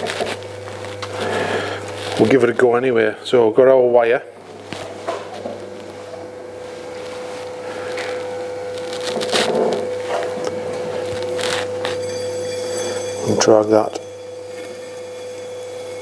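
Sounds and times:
potter's wheel whining and humming: 0.0 - 16.0.

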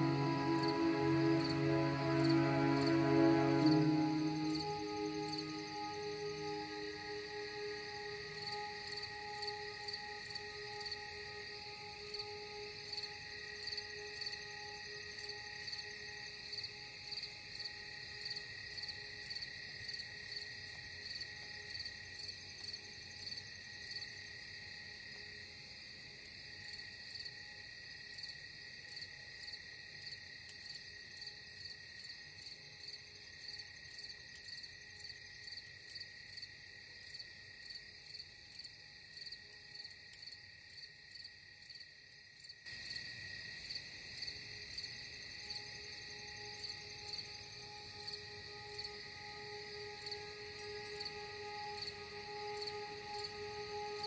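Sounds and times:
soft steady drone: 0.0 - 19.8, 45.4 - 54.0
crickets chirping: 0.0 - 54.0.

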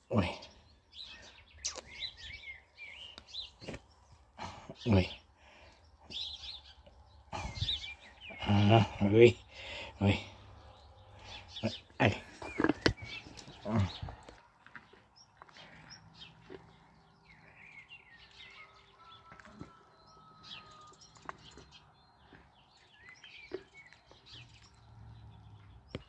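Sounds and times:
person speaking: 13.6 - 14.2
faint bird chirps: 15.6 - 24.9.

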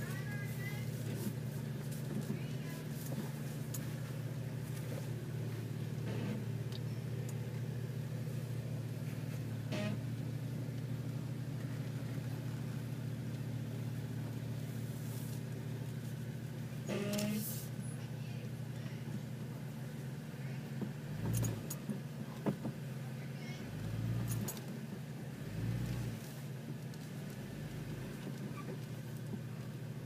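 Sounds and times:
off-road vehicle engine running: 0.0 - 30.0.

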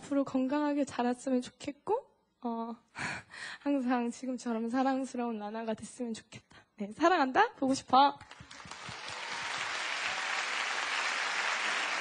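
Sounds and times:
studio audience applauding: 8.2 - 12.0.

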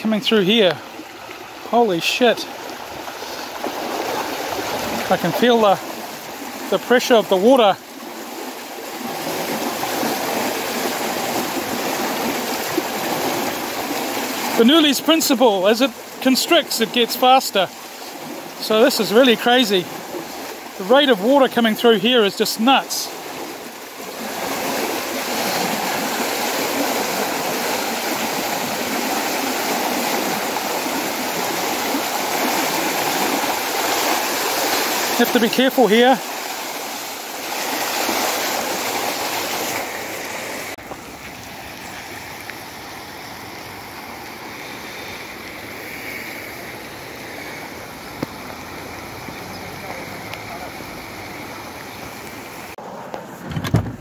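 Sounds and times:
floodwater rushing: 0.0 - 54.0.

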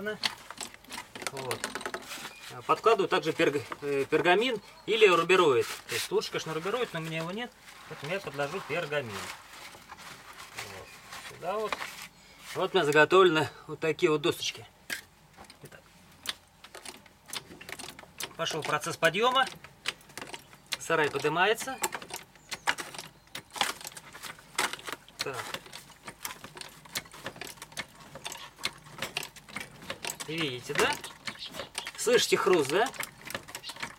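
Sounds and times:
roofing paper crinkling: 0.0 - 12.8, 16.6 - 33.9
wooden shed frame crunching: 0.0 - 13.5, 14.3 - 33.9
hydraulic jack clicking and knocking: 0.2 - 2.1, 16.2 - 33.9.

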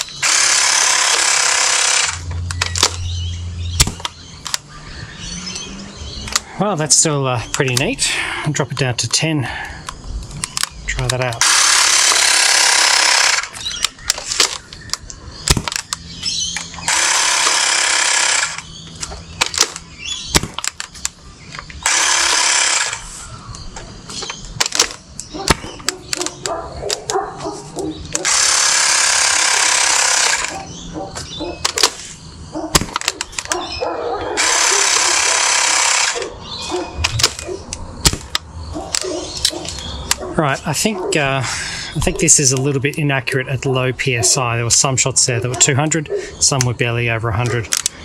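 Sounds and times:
air compressor running: 0.0 - 2.9, 11.4 - 13.8, 16.6 - 19.6, 21.8 - 23.4, 28.1 - 31.4, 34.3 - 37.4.

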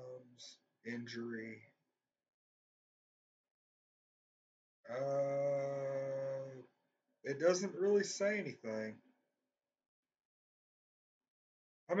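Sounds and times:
man saying uhhh: 4.9 - 6.6, 7.3 - 8.9.

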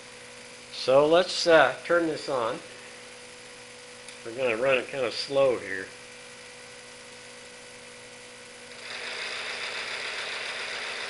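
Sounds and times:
steady low hum: 0.0 - 11.0
model engine running with rattle: 8.7 - 11.0.

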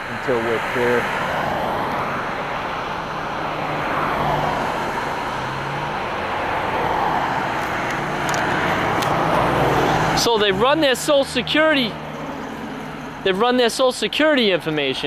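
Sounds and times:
cars passing close by: 0.0 - 15.0.

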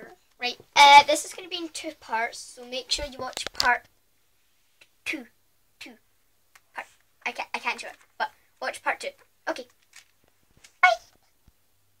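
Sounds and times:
high-pitched vocal squeak: 10.8 - 11.2.

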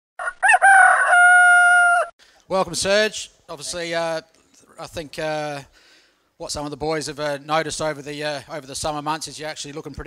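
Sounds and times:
rooster crowing: 0.2 - 2.1.

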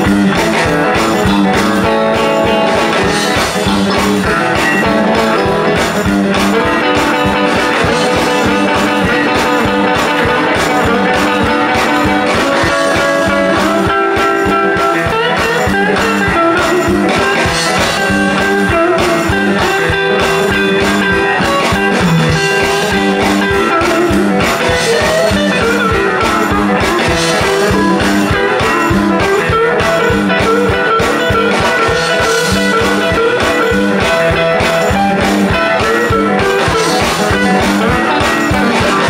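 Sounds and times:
guitars: 0.0 - 39.0
steady drum beat: 0.0 - 39.0.

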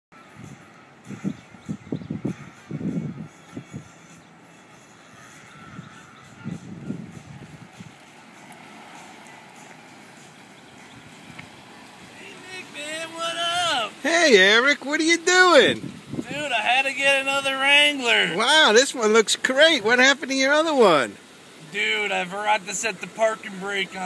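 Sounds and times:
outdoor ambience: 0.1 - 24.0
vehicle engine approaching: 5.6 - 15.8
man's voice: 12.1 - 24.0.

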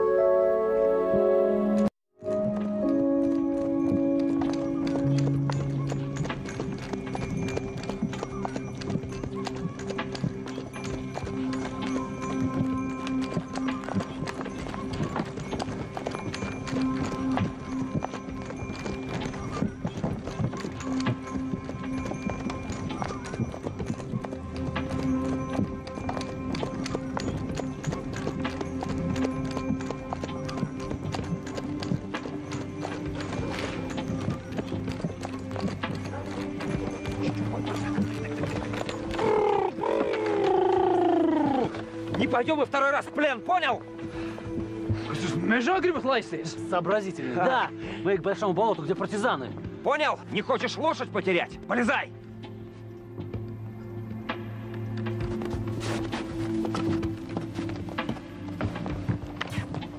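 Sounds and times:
music with long held notes: 0.0 - 59.9
horse hooves clip-clopping: 1.1 - 59.9.

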